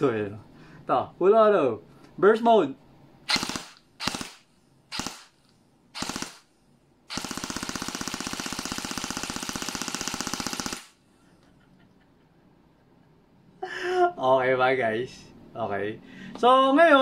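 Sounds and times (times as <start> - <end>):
airsoft gun firing full auto: 3.3 - 6.5, 7.1 - 11.0.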